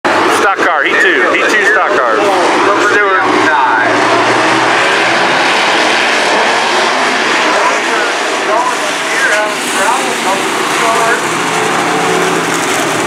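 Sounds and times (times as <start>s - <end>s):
stock car engines racing: 0.1s - 13.0s.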